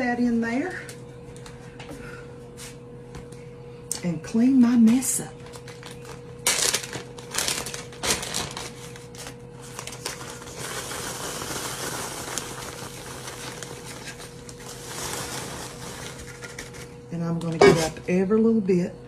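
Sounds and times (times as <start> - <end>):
plastic bag crinkling: 5.4 - 16.9
crumbs pouring into plastic bag: 6.5 - 16.4.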